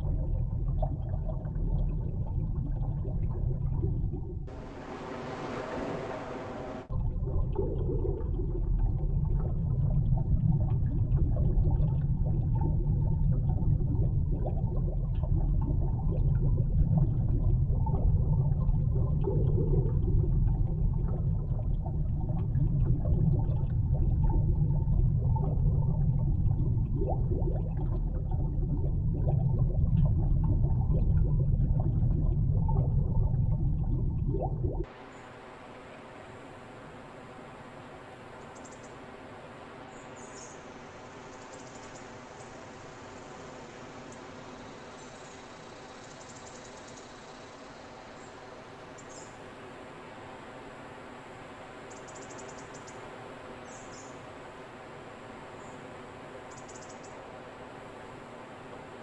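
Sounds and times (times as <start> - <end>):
small clicks and bubbling: 0.0 - 4.6, 6.9 - 34.9
muffled underwater rumble: 0.0 - 36.6
steady hiss: 4.5 - 6.9
thin high whine: 4.5 - 6.9.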